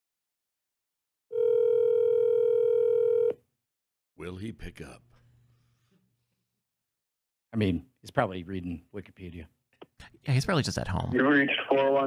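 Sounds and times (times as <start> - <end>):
telephone ringback tone: 1.3 - 3.4.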